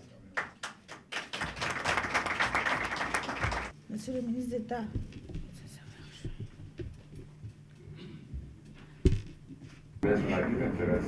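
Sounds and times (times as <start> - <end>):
people clapping: 0.0 - 3.8.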